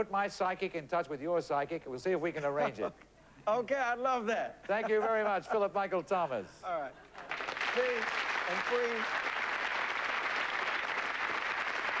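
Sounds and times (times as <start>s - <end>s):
audience applauding: 7.1s - 12.0s.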